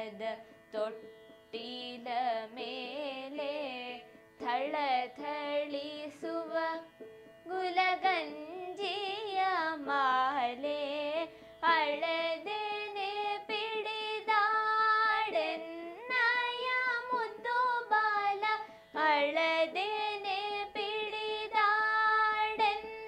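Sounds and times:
women singing devotional song: 0.0s - 23.0s.

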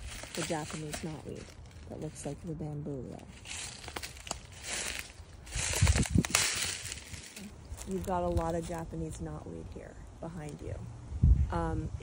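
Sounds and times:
footsteps crunching in dry leaves: 0.0s - 9.4s.

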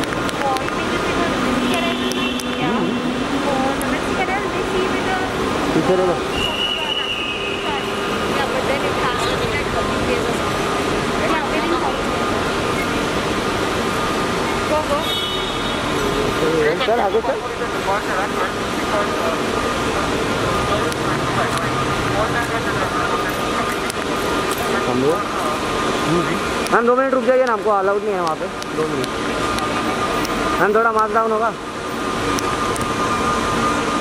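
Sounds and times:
airport terminal hum: 0.0s - 34.0s
crowd noise with indistinct voices: 0.0s - 34.0s
traffic: 0.0s - 34.0s
short high tone: 1.6s - 3.2s
man speaking: 2.6s - 3.2s, 5.7s - 6.3s, 16.2s - 19.4s, 26.0s - 29.2s.

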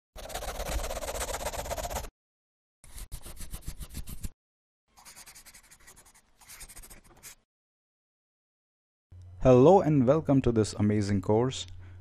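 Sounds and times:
pen scribbling on paper: 0.2s - 2.1s, 5.0s - 7.4s.

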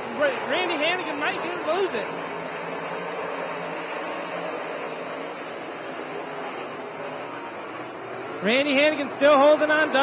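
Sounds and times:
race car engines running hard: 0.0s - 10.0s.

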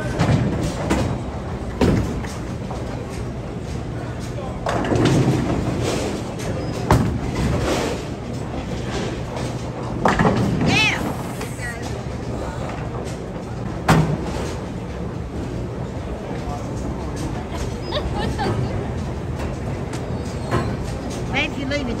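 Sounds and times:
bowling balls rolling: 0.0s - 21.4s
background chatter: 2.8s - 9.9s, 10.7s - 22.0s.

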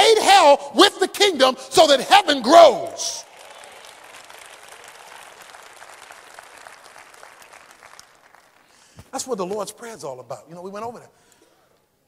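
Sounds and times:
congregation applauding: 2.2s - 9.0s.

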